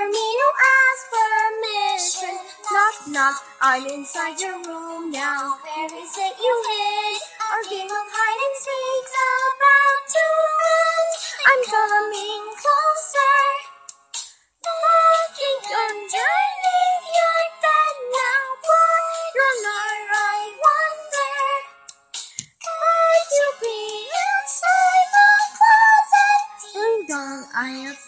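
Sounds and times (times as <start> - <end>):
backing music: 0.0 - 28.0
high singing voice: 14.6 - 21.7, 22.6 - 28.0.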